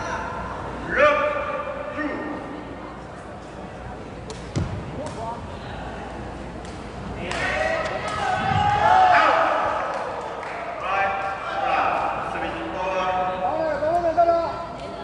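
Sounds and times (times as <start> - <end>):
ball kicked with sharp thud: 4.5 - 4.9
players and spectators shouting: 7.4 - 12.7.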